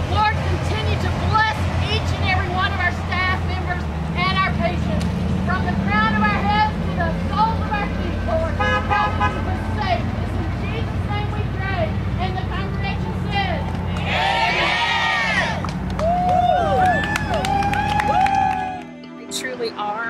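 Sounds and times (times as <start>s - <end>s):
road traffic hum: 0.0s - 20.0s
overlapping voices: 12.4s - 18.8s.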